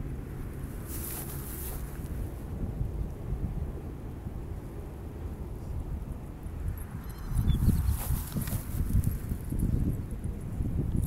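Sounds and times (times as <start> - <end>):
wind rumbling on microphone: 0.0 - 11.0
rustling and ticks in grass: 0.6 - 2.6, 6.9 - 11.0.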